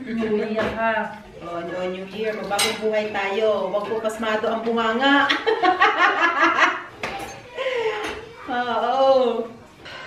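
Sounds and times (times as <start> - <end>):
cutlery and dishes clinking: 2.1 - 3.2, 6.9 - 8.4, 9.8 - 10.0.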